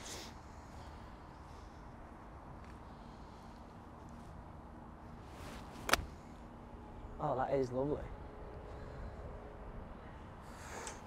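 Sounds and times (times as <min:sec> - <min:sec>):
golf club swish: 0:05.2 - 0:06.2.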